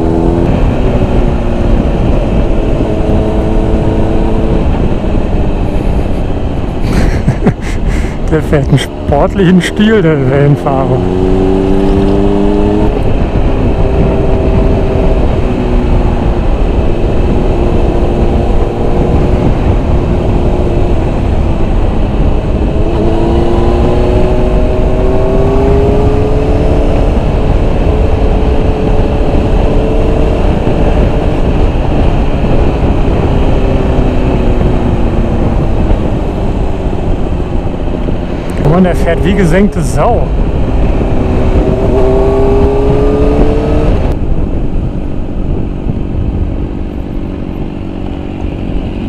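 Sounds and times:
motorcycle engine revving: 0:00.0 - 0:49.0
wind rumble on microphone: 0:00.0 - 0:49.0.

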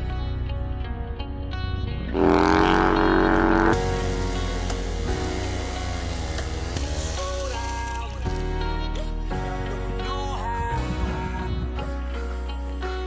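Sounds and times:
motorcycle engine revving: 0:01.9 - 0:08.3.

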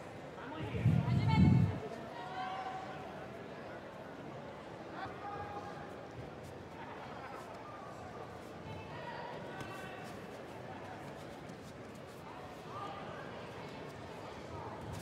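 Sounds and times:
sports hall ambience: 0:00.0 - 0:15.0.

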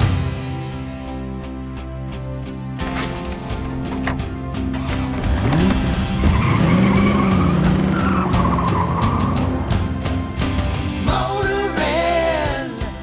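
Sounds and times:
background music: 0:00.0 - 0:13.0
car engine revving: 0:04.8 - 0:10.4.

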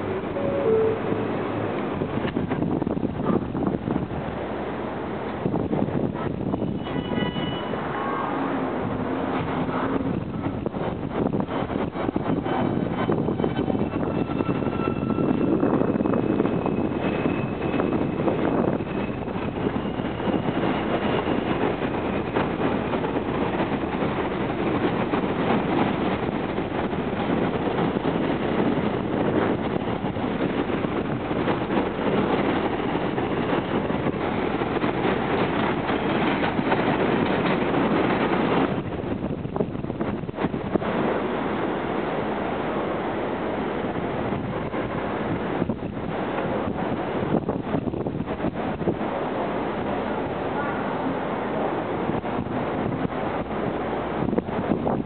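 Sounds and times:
train wheels rumbling on rail: 0:00.0 - 0:55.0
wind buffeting microphone: 0:00.0 - 0:55.0.

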